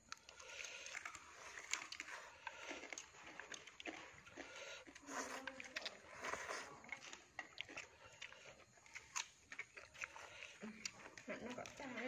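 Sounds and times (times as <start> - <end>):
person chewing: 0.0 - 12.0.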